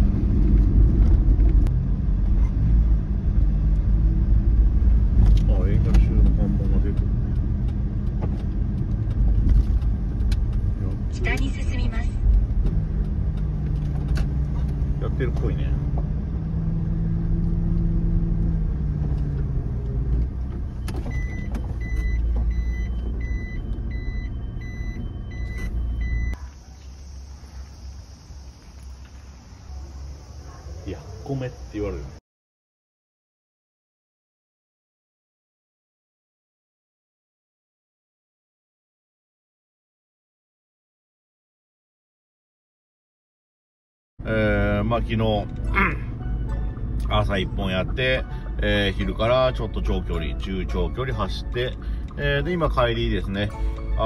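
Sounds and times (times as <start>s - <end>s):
regular beeping: 20.4s - 29.7s.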